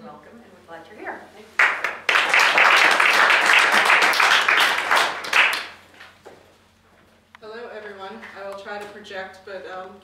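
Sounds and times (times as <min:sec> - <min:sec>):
audience applauding: 0:01.6 - 0:05.8.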